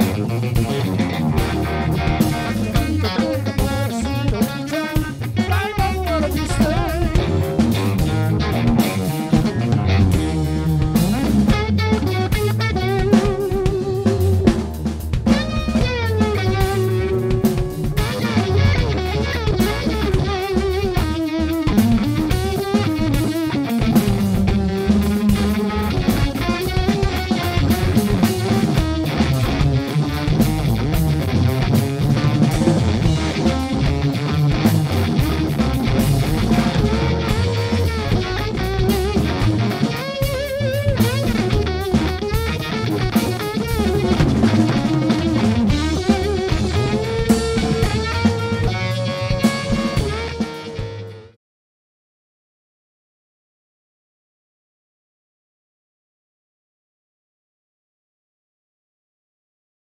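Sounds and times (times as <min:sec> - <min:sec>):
electric guitar solo: 0:00.0 - 0:51.4
rock band playing: 0:00.0 - 0:51.4.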